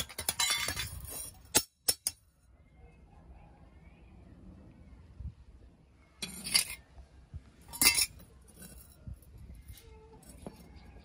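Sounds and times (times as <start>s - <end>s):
knife scraping on concrete: 6.2s - 6.8s, 7.7s - 8.8s.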